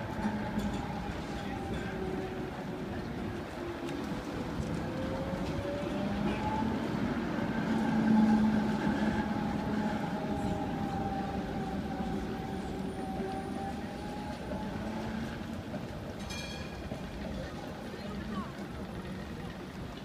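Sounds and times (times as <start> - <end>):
tram motor hum and whine: 0.0 - 20.0.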